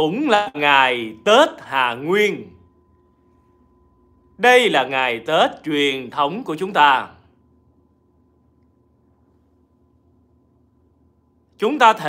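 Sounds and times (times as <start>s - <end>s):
man speaking: 0.0s - 2.6s, 4.4s - 7.2s, 11.6s - 12.0s
low hum: 0.0s - 11.6s
faint steady high tone: 0.0s - 12.0s.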